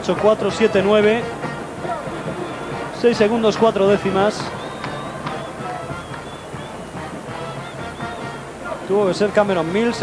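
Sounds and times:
arena crowd din: 0.0s - 10.0s
faint voices: 0.0s - 10.0s
music playing: 0.0s - 10.0s.

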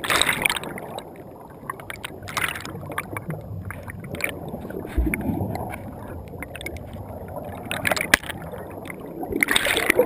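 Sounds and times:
muffled underwater water rush: 0.0s - 10.0s.

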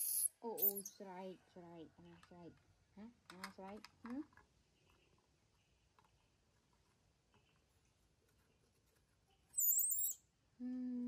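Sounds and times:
baby monkey squeaking: 0.0s - 1.0s, 9.6s - 10.2s.

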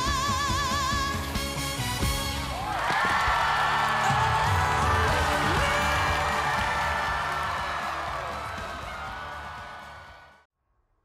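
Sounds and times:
audience cheering and applauding: 2.4s - 10.5s.

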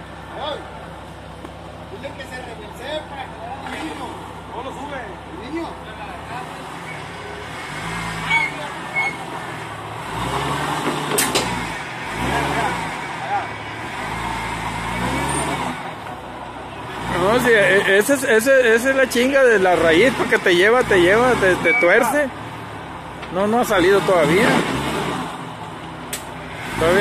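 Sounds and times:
engine revving: 6.2s - 16.1s, 16.7s - 22.6s, 23.3s - 27.0s
sharp click: 11.1s - 11.6s.

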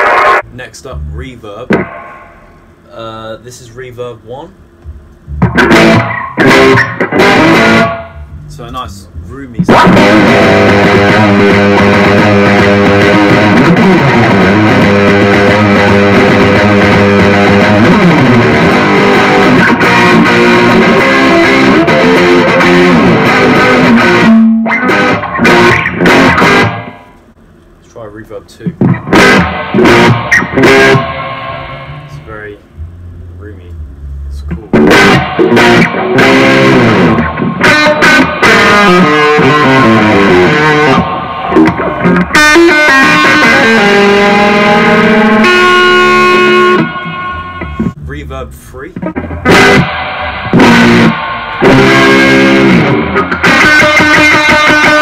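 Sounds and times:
electric guitar with reverb: 0.0s - 0.4s, 1.2s - 2.8s, 4.8s - 27.2s, 28.7s - 33.1s, 33.7s - 48.0s, 48.9s - 55.0s.

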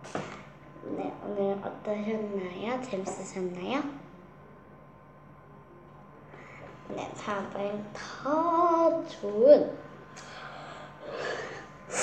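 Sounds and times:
sharp intake of breath: 10.2s - 12.0s.

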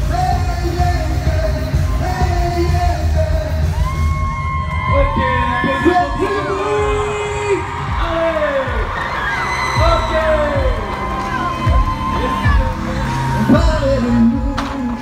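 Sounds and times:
live pop music with singing: 0.0s - 15.0s
crowd yelling and whooping: 0.1s - 15.0s.

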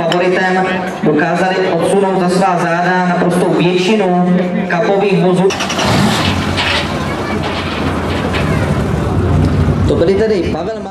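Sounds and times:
car engine idling: 5.5s - 10.9s.

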